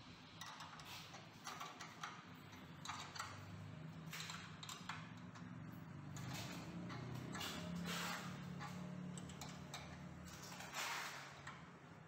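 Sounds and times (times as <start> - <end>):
spanner clicking and scraping: 0.2 - 11.8.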